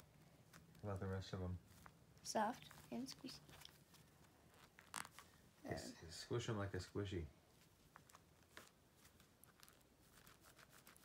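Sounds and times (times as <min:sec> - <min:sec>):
soft clicks and rustles of plastic: 0:00.0 - 0:05.5, 0:07.5 - 0:11.0.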